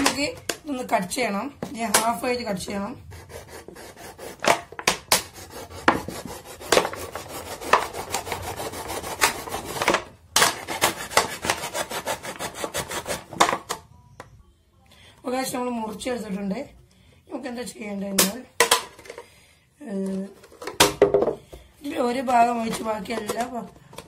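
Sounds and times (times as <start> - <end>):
knife sawing plastic bottle: 3.1 - 13.4.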